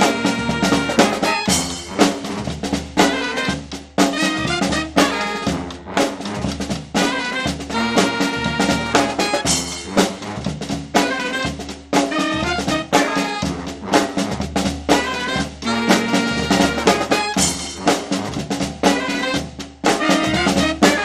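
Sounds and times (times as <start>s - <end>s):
accented drum hits: 0.0s - 21.0s
brass band playing: 0.0s - 21.0s.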